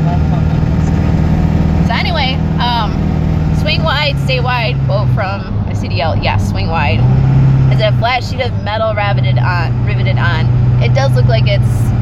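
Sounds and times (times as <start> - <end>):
truck engine drone: 0.0 - 12.0.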